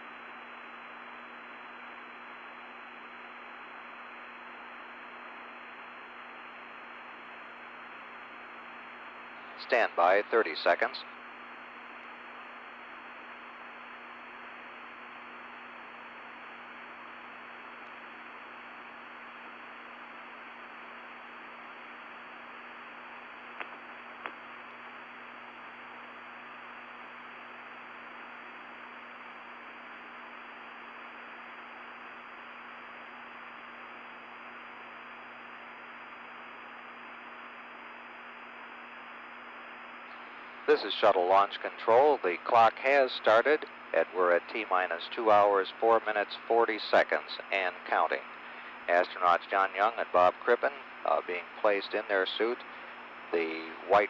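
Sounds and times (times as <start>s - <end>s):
audio channel hiss: 0.0s - 54.0s
faint high whine: 0.0s - 54.0s.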